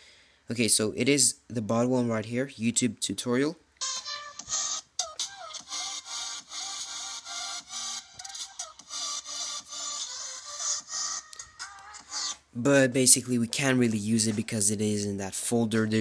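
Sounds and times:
intro music through phone speaker: 0:03.8 - 0:12.6.

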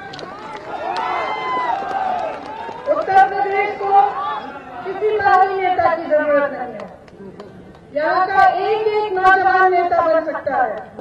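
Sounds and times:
woman speaking into a microphone: 0:02.9 - 0:04.2, 0:04.8 - 0:10.9.

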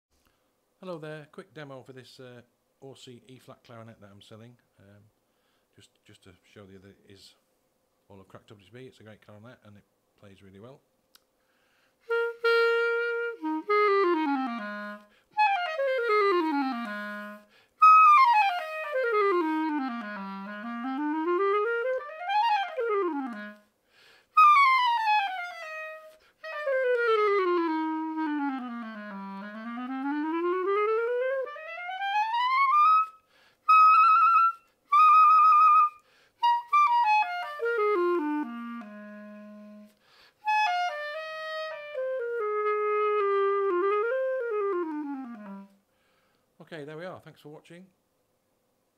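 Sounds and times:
clarinet playing fast scales: 0:12.1 - 0:23.7, 0:24.3 - 0:45.8.

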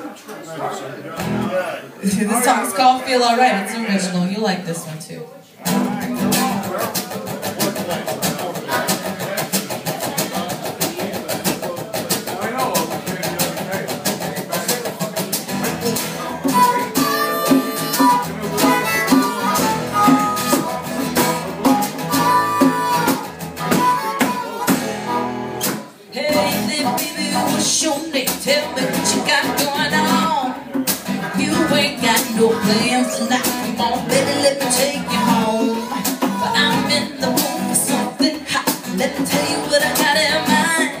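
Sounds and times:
acoustic guitar strumming: 0:05.6 - 0:41.0
djembe beat: 0:06.3 - 0:26.5, 0:34.8 - 0:38.0
harmonica lead line: 0:15.6 - 0:27.7, 0:31.6 - 0:38.2.

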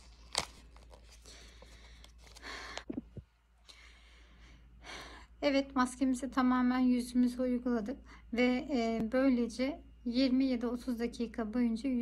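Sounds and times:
packaging rustling: 0:00.0 - 0:03.0
low steady hum: 0:00.0 - 0:12.0.

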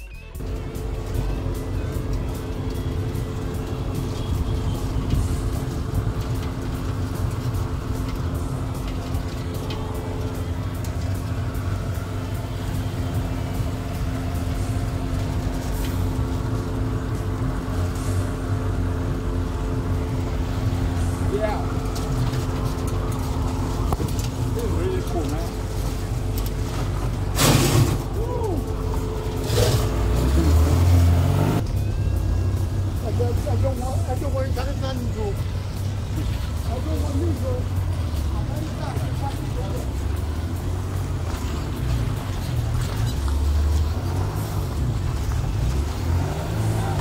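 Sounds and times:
car drivetrain drone: 0:00.0 - 0:47.0
wind and road rumble: 0:00.3 - 0:47.0
faint voices: 0:21.0 - 0:30.9.

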